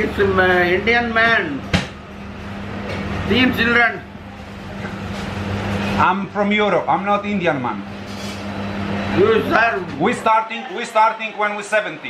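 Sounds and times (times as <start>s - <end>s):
steady low hum: 0.0s - 10.3s.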